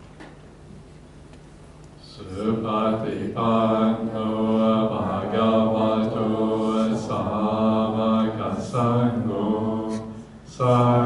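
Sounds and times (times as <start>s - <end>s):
monotone devotional chanting: 2.0s - 11.0s.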